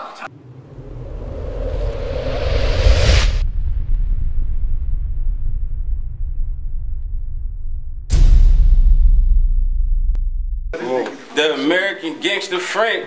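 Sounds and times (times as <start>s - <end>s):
rising whoosh: 0.2s - 10.6s
deep rumble: 0.3s - 10.8s.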